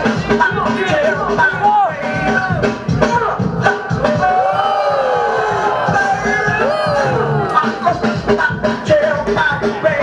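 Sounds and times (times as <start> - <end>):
loud dance music over sound system: 0.0 - 10.0.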